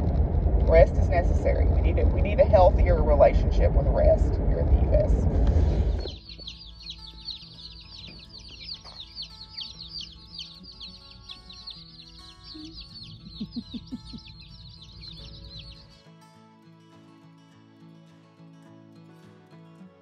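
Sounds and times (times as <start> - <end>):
baby chicks peeping: 5.7 - 16.0.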